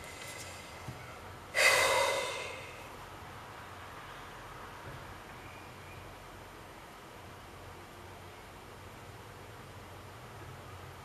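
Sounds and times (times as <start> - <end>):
sharp breath: 1.5 - 2.9.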